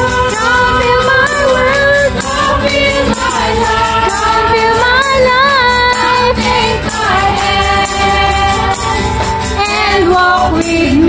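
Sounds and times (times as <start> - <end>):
band accompaniment: 0.0 - 11.0
voices singing long notes: 0.0 - 11.0.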